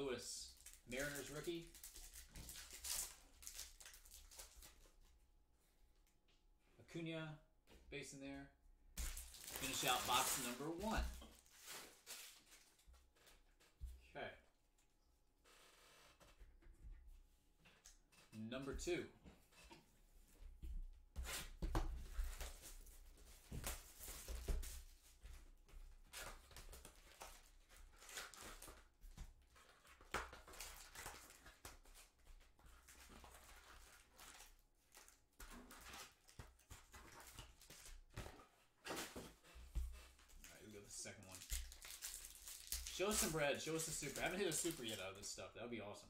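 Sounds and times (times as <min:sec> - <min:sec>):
shrink wrap tearing and crinkling: 0:00.5 - 0:04.9, 0:09.0 - 0:12.8, 0:40.6 - 0:45.3
box and foil packs rustling: 0:09.0 - 0:13.4, 0:41.2 - 0:45.2.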